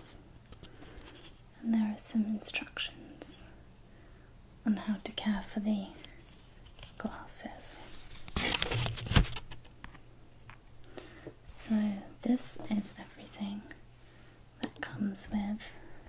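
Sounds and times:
person whispering: 1.6 - 3.6, 7.0 - 8.0, 11.5 - 13.8, 14.6 - 16.0
paper rustle: 7.9 - 9.7.

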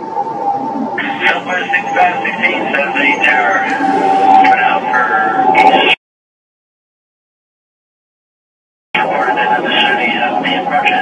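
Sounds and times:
steady tone: 0.0 - 6.0, 9.0 - 11.0
man speaking over radio: 1.0 - 6.0, 9.0 - 11.0.

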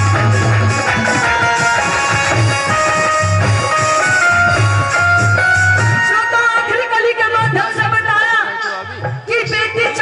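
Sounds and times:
melody of held notes: 0.0 - 6.6.

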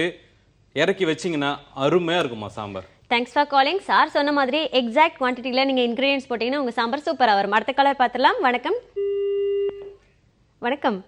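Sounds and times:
telephone busy tone beep: 9.0 - 10.0.

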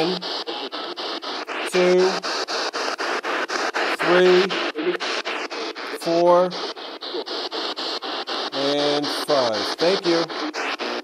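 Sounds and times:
chopped radio static bursts: 0.0 - 11.0.

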